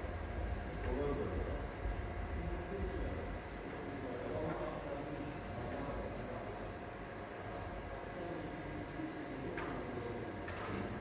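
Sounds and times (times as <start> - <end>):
low hum and hiss of large hall: 0.0 - 11.0.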